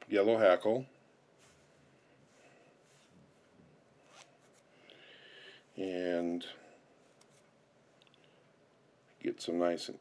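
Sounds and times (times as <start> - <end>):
faint rustling: 1.2 - 9.2
soft scratch: 1.4 - 4.7.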